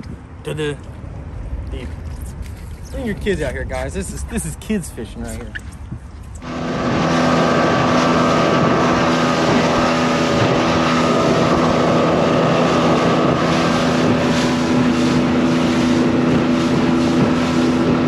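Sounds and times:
outboard engine drone: 0:00.0 - 0:18.0
water rushing along hull: 0:00.0 - 0:18.0
wind buffeting microphone: 0:00.0 - 0:18.0.

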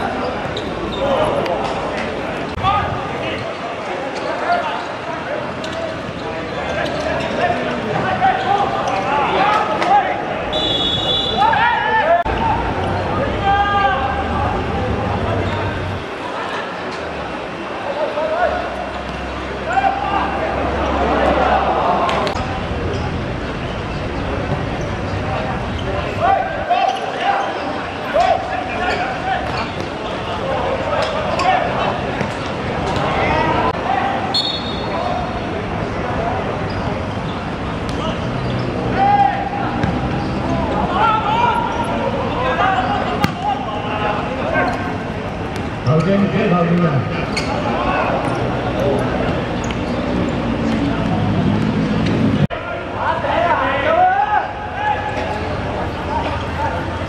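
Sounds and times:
people shouting: 0:08.1 - 0:14.6, 0:38.9 - 0:39.8, 0:40.6 - 0:44.7
referee's whistle blasts: 0:10.5 - 0:11.6, 0:34.3 - 0:34.9
ball kicked and bouncing: 0:43.2 - 0:43.4.

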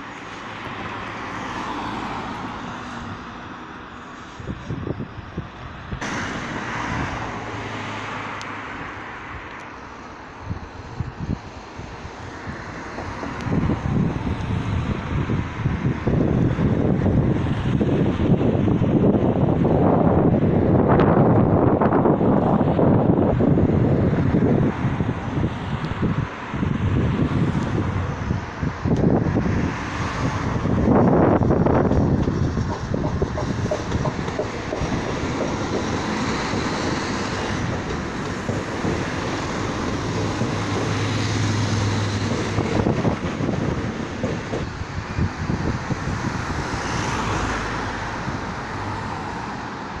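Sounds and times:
train passing: 0:00.0 - 0:50.0.

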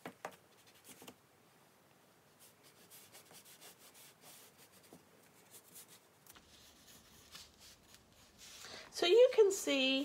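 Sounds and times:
pencil scratching on paper: 0:02.4 - 0:08.6.

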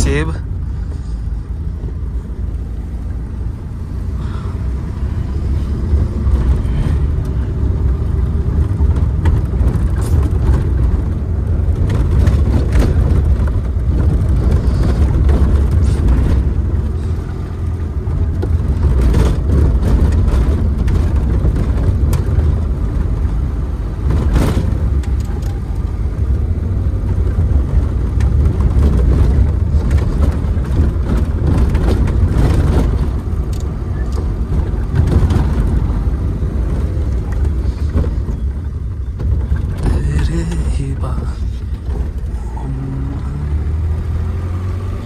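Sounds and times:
car engine rumble from inside: 0:00.0 - 0:45.0
car knocking over rough road: 0:05.8 - 0:45.0.

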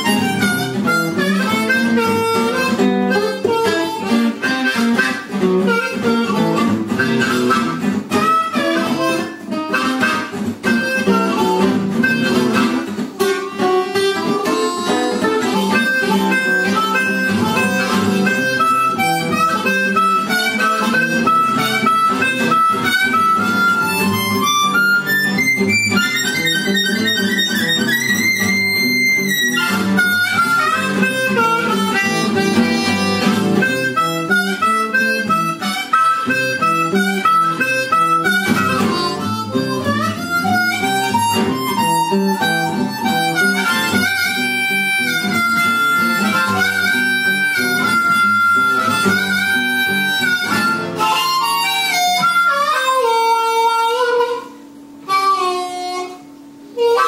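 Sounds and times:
acoustic guitar rhythm: 0:00.0 - 0:57.0
blues harmonica: 0:00.0 - 0:57.0.

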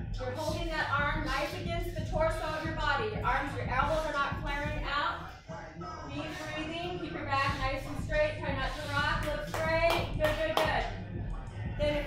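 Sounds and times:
sharp hand claps: 0:09.2 - 0:10.8.

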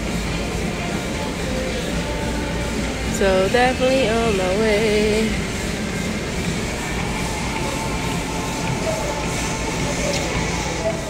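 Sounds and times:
footsteps on treadmill: 0:00.0 - 0:11.0
treadmill belt and motor rumble: 0:00.0 - 0:11.0.

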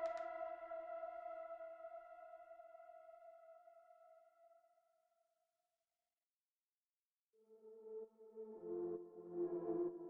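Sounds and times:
background music held chord: 0:00.0 - 0:04.1, 0:07.4 - 0:10.0.

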